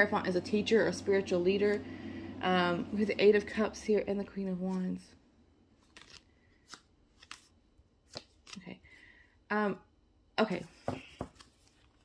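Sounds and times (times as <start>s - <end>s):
cards sliding and tapping: 5.8s - 8.6s, 10.8s - 12.0s.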